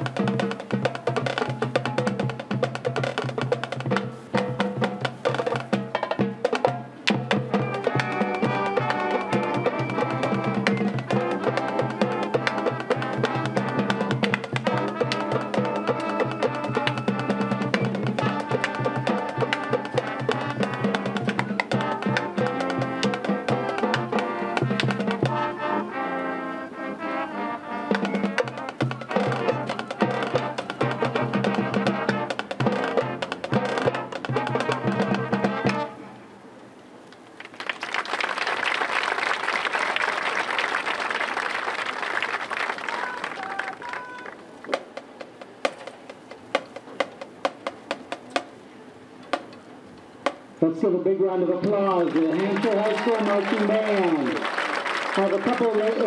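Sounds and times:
marching band brass and drums: 0.0 - 36.2, 39.1 - 48.7, 49.3 - 56.0
crowd applauding and cheering: 18.2 - 21.8, 37.4 - 44.5, 51.6 - 56.0.

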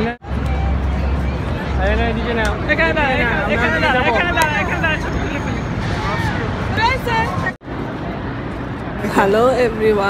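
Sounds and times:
crowd hum: 0.0 - 10.0
traffic noise: 0.0 - 10.0.

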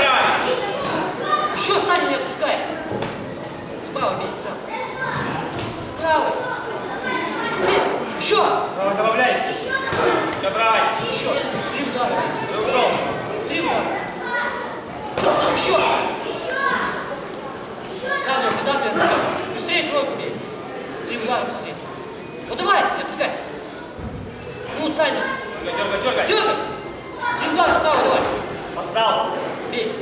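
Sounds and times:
voices calling out echoing: 0.0 - 30.0.

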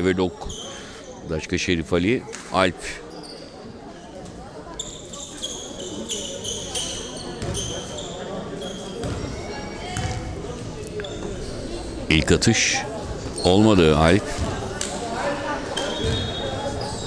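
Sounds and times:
basketball bouncing on hardwood: 10.0 - 10.2.

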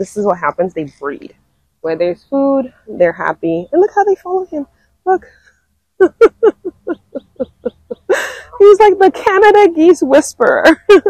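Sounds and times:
woman laughing: 6.0 - 8.8, 10.5 - 11.0.

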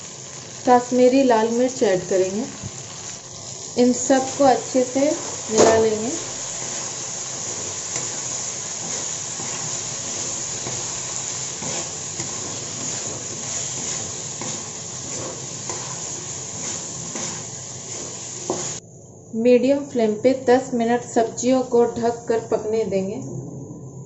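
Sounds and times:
vegetables sizzling in pan: 0.0 - 18.8
spatula scraping pan: 5.0 - 18.8.

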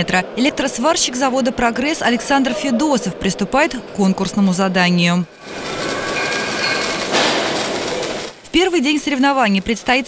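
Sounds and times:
welding arc crackling and hissing: 5.3 - 10.0.

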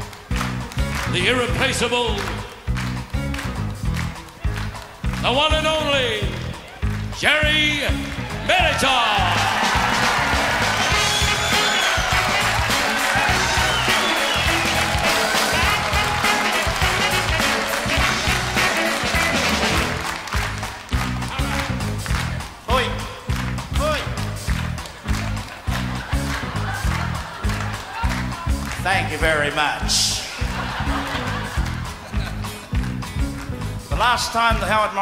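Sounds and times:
audience applause: 0.0 - 5.3, 7.9 - 33.5
pulsing bass line: 0.0 - 33.9.

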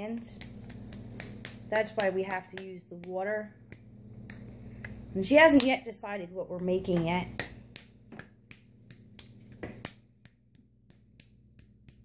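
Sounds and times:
hands slapping damp clay: 0.1 - 12.0.

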